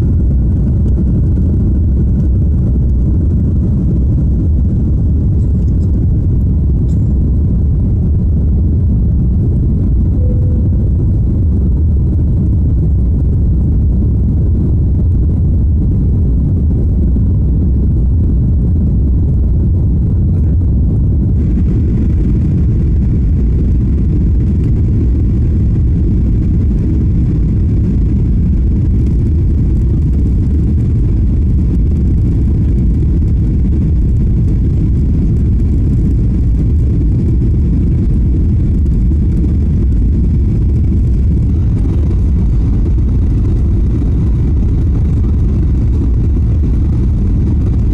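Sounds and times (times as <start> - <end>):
jet engine cabin rumble: 0.0 - 47.9.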